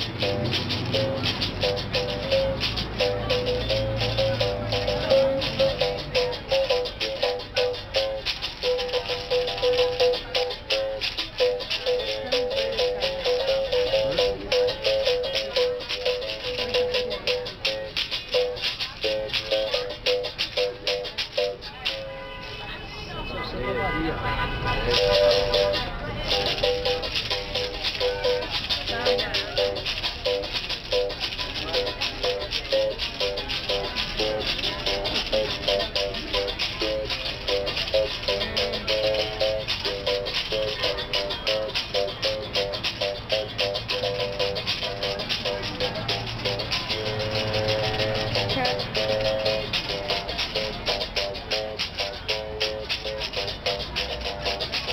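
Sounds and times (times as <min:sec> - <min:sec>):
basket rattle shaking: 0:00.0 - 0:22.1, 0:24.9 - 0:54.9.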